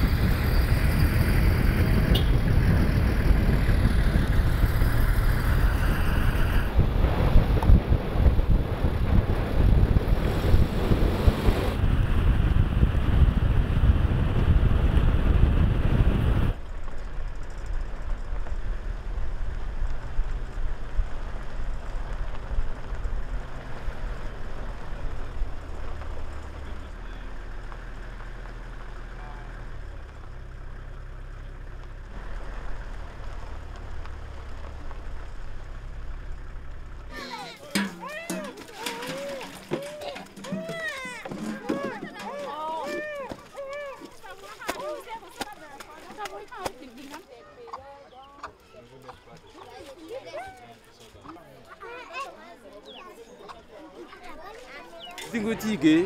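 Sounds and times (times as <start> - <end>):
motor vehicle engine: 0.0 - 56.0
road noise: 0.0 - 56.0.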